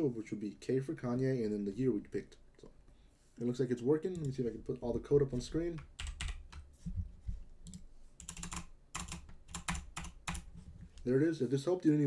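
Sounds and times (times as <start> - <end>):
keyboard keys clicking: 7.6 - 10.5.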